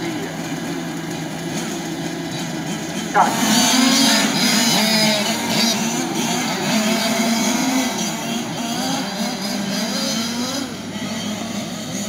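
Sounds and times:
small two-stroke engines buzzing: 0.0s - 12.0s.

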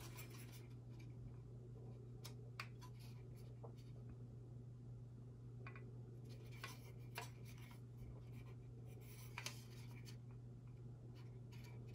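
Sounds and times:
steady low hum: 0.0s - 11.9s.

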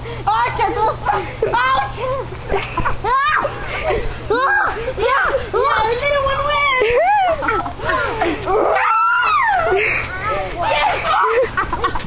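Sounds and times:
girls squealing and shrieking: 3.0s - 11.6s.

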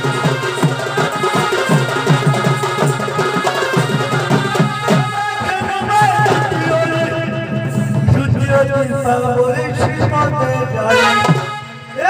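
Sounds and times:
folk music over loudspeakers: 0.0s - 12.0s
person singing: 4.8s - 12.0s.

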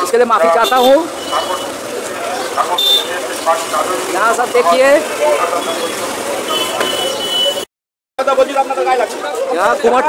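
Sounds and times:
people talking: 0.0s - 7.6s, 8.2s - 10.0s
vehicles running: 0.0s - 10.0s.

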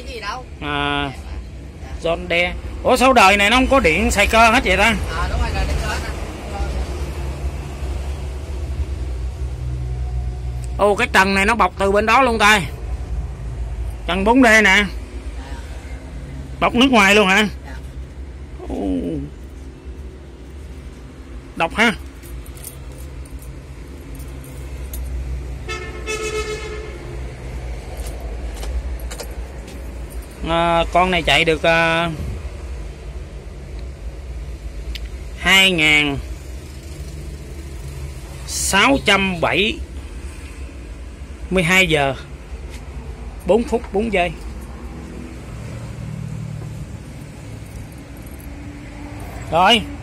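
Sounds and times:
horn-like beep: 25.7s - 27.0s
low engine rumble: 36.2s - 50.0s.

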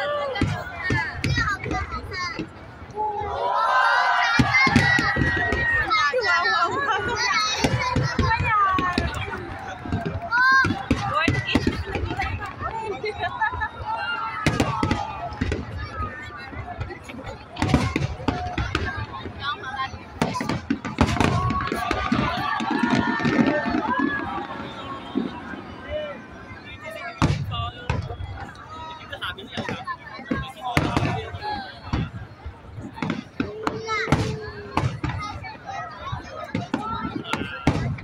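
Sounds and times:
fireworks bangs: 0.0s - 2.8s, 3.7s - 38.0s
crowd chatter and calls: 0.0s - 38.0s.

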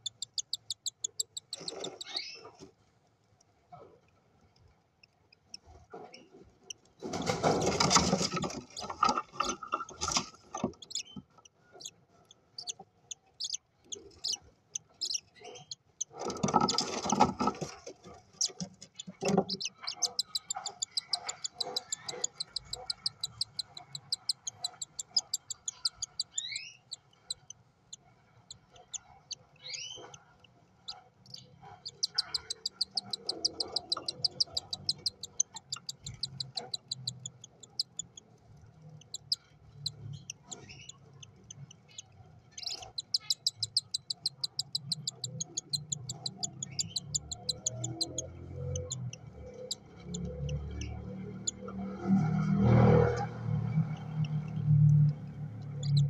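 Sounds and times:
chick peeping: 0.0s - 2.6s, 7.2s - 12.0s, 12.6s - 38.3s, 39.0s - 51.7s, 53.9s - 56.0s
birds rustling in wood shavings: 5.6s - 12.8s, 13.4s - 23.4s.

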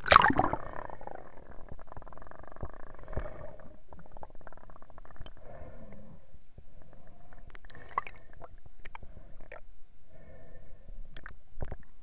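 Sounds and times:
underwater rumbling and gurgling: 0.0s - 9.3s.

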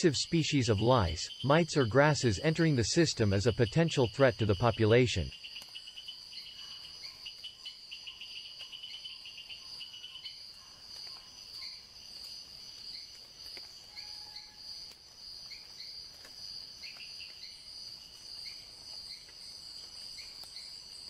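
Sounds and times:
insect chirps: 0.0s - 21.0s
insects trilling: 0.0s - 21.0s.

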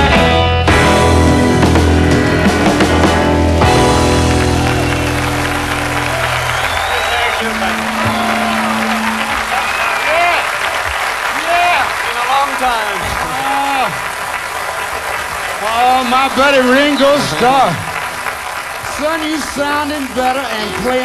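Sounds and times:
audience applauding: 1.6s - 21.0s
man talking through microphone: 6.8s - 10.6s, 11.3s - 14.0s, 15.6s - 18.0s, 18.8s - 21.0s.

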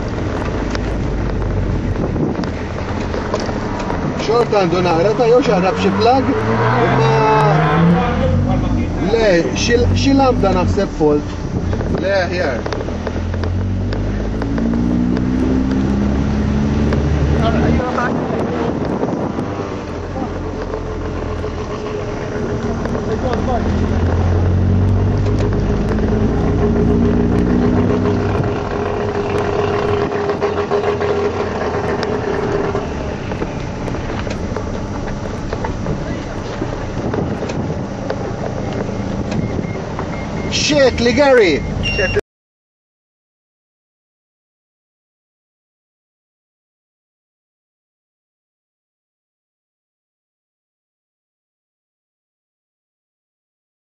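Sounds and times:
car engine accelerating: 0.0s - 42.2s.

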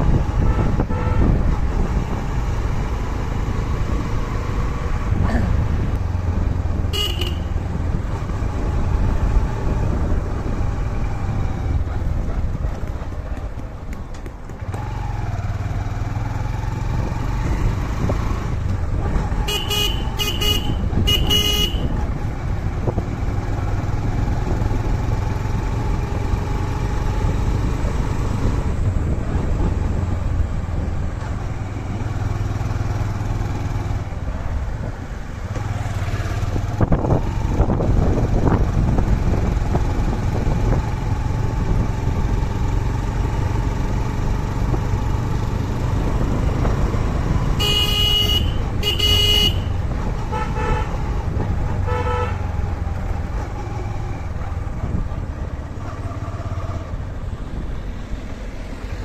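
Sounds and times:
road and wind noise: 0.0s - 59.0s
vehicle horn beeping: 0.4s - 1.4s, 6.9s - 7.6s, 19.5s - 22.0s, 47.6s - 51.0s, 51.8s - 52.5s.

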